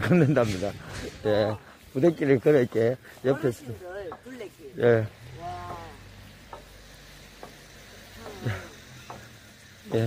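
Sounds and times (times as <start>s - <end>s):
steady outdoor hiss: 0.0s - 10.0s
faint ticks: 5.6s - 10.0s.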